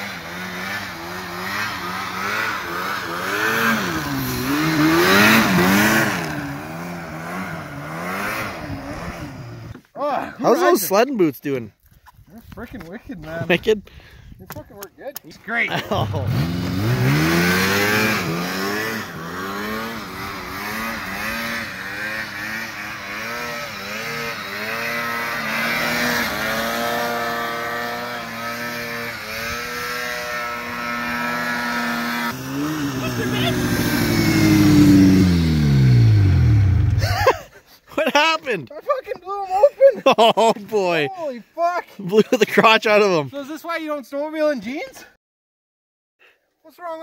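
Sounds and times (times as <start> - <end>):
snowmobile engine revving: 0.0 - 11.0, 15.5 - 38.6, 39.3 - 41.3.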